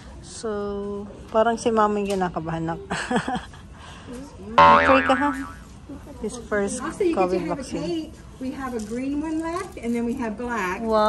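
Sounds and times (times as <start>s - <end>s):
cartoon boing sound effect: 4.6s - 5.6s.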